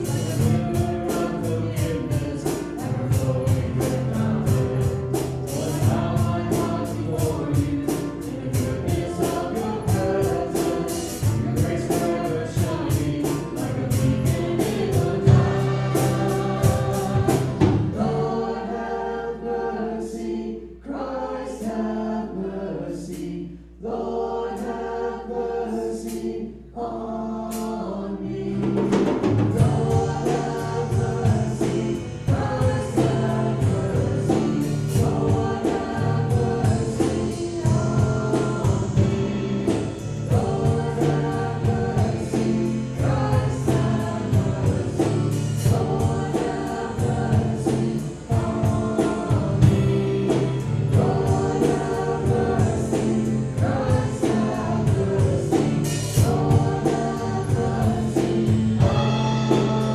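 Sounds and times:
instrumental accompaniment: 0.0s - 19.8s, 27.5s - 59.9s
congregation singing a hymn: 0.0s - 59.9s.

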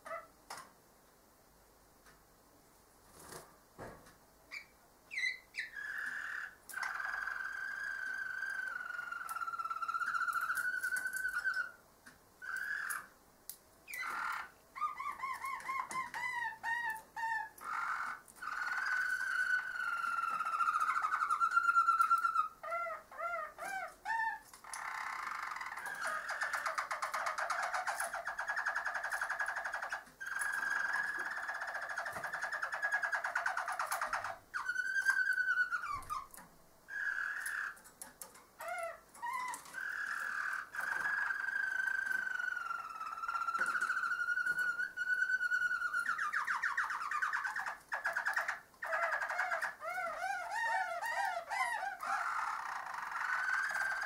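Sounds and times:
canary singing rolling trills: 0.0s - 0.6s, 4.5s - 11.8s, 12.4s - 13.2s, 13.8s - 54.0s.

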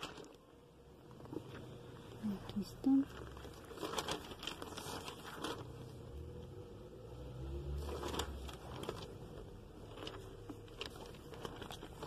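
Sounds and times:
paper catalogue pages rustling: 0.0s - 6.4s, 7.6s - 12.0s.

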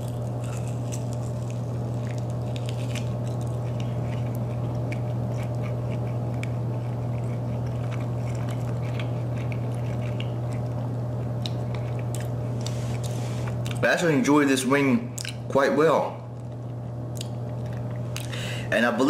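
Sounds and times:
person chewing chicken wing: 0.0s - 13.8s, 16.3s - 18.5s
steady low hum: 0.0s - 19.0s
wet mouth clicks and smacks: 15.2s - 15.4s, 17.1s - 18.4s.

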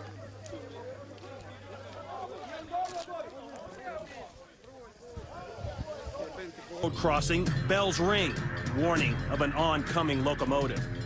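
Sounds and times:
people talking: 0.0s - 10.9s.

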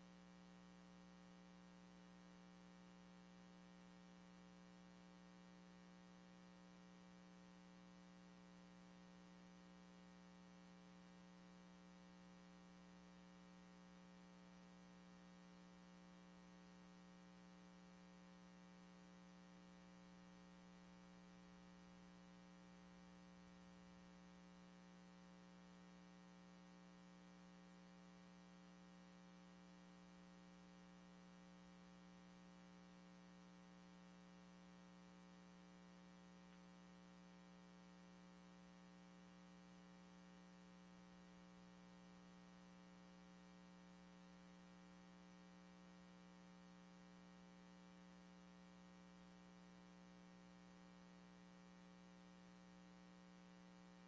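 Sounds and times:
faint hum with high whine: 0.0s - 54.0s.

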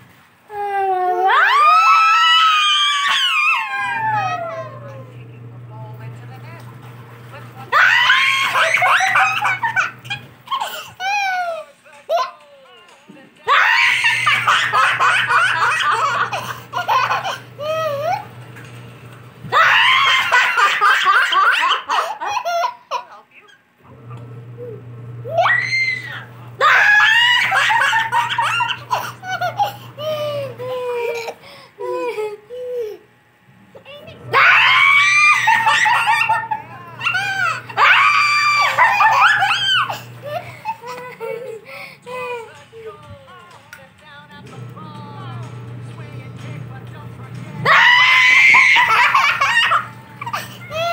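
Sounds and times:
woman laughing: 0.6s - 5.3s, 7.4s - 12.4s, 13.5s - 18.3s, 19.6s - 23.6s, 25.4s - 33.1s, 34.4s - 43.4s, 47.6s - 50.9s
toddler laughing: 8.1s - 12.4s, 13.6s - 18.3s, 19.6s - 23.2s, 26.7s - 33.1s, 34.9s - 42.6s, 48.2s - 50.9s.

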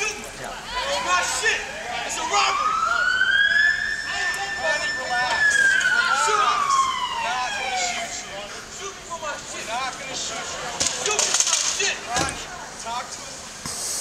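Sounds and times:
voices: 0.0s - 14.0s
emergency vehicle siren wailing: 0.6s - 10.5s.

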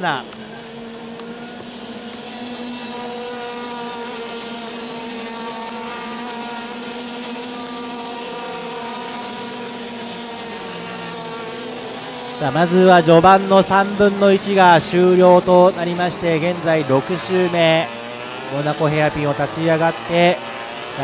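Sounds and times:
racing kart engines buzzing: 0.0s - 21.0s.

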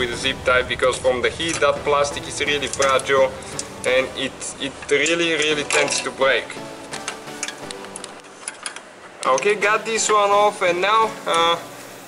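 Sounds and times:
faint background music: 0.0s - 12.0s
plastic clips clicking: 6.9s - 9.6s.

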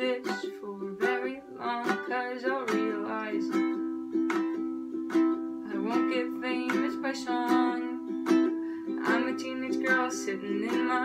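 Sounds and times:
ukulele strummed chords: 0.0s - 11.0s.

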